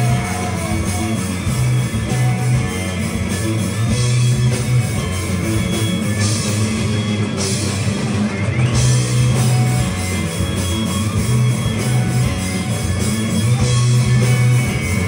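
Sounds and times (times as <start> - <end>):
rock band playing: 0.0 - 15.0.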